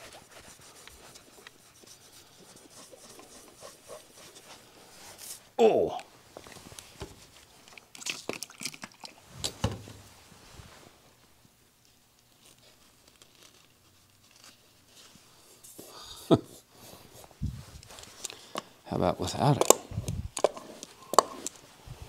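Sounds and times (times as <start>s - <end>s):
paper crinkling: 12.2s - 15.6s.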